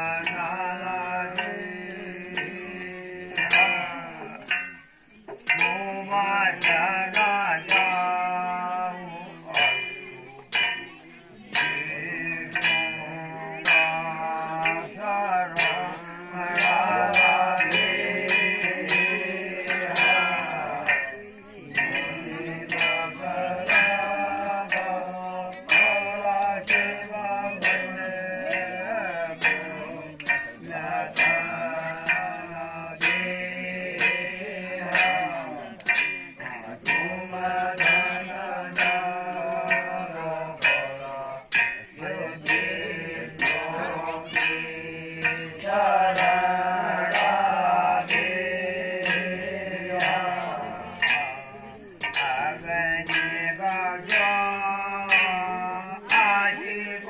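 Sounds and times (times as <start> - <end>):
man singing through a microphone: 0.0 - 57.0
sharp percussion strikes: 0.0 - 57.0.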